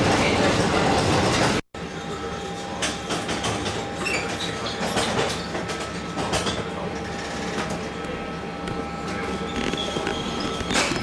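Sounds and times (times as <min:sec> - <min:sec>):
tram wheels rumbling on rail: 0:00.0 - 0:11.0.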